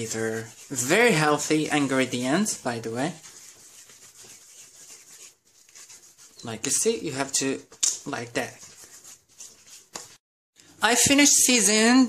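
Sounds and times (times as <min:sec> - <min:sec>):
hands rubbing paste into meat: 0:00.0 - 0:10.2.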